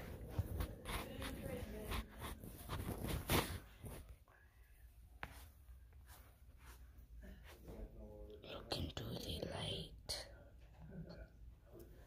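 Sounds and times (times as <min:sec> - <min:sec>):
child whispering: 0:08.4 - 0:10.4.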